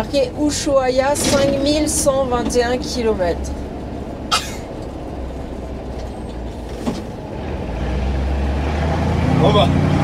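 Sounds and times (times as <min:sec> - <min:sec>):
diesel truck engine: 0:00.0 - 0:10.0.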